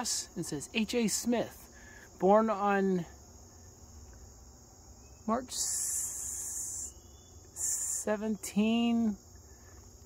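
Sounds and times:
insect high-pitched buzz: 0:00.0 - 0:10.0.

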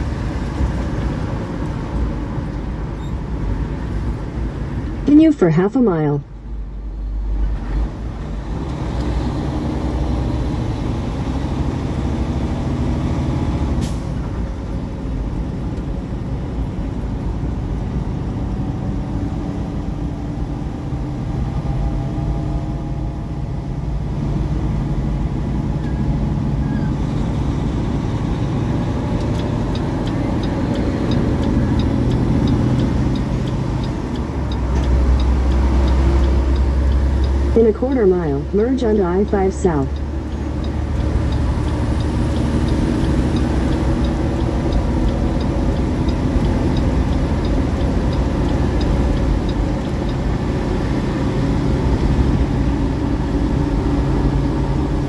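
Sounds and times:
road noise: 0:00.0 - 0:55.0
truck diesel engine under load: 0:00.0 - 0:55.0
faint regular ticking: 0:28.9 - 0:51.2.

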